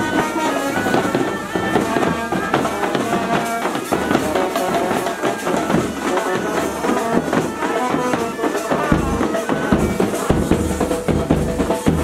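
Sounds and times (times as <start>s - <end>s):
brass horn: 0.0s - 11.1s
bagpipes playing melody: 0.0s - 12.0s.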